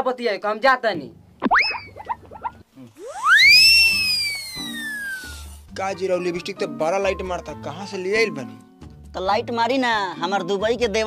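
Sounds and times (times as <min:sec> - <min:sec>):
cartoon whistle swoop: 0:01.4 - 0:02.2, 0:03.0 - 0:05.5
low background music: 0:04.1 - 0:11.0.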